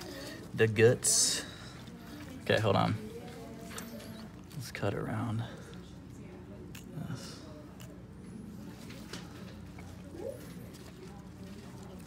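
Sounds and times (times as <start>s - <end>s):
scissors snipping: 6.7s - 6.9s.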